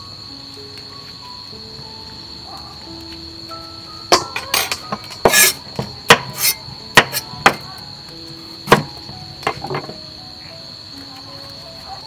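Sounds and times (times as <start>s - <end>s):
cleaver scraping: 4.1s - 7.6s
cleaver striking chopping board: 4.1s - 7.7s, 8.7s - 10.0s
knife cutting into gourd: 4.5s - 7.6s.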